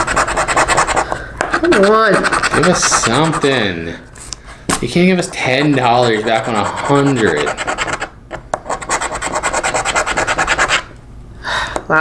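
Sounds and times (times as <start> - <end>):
scratching lottery ticket: 0.0 - 3.8, 5.2 - 10.9.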